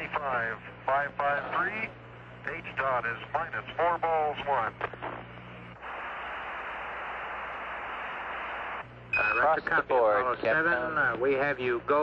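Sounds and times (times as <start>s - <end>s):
radio static hiss: 0.0s - 11.1s.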